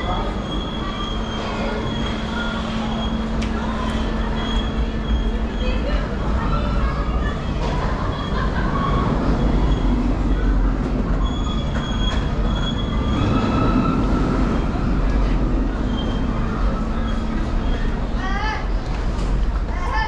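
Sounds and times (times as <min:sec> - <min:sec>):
boats rumbling along channel: 0:00.0 - 0:20.0.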